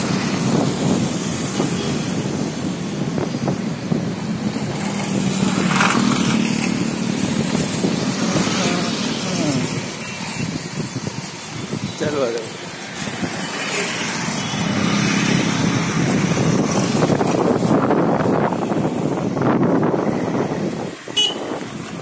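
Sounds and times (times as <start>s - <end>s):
motorcycles and cars passing: 0.0s - 22.0s.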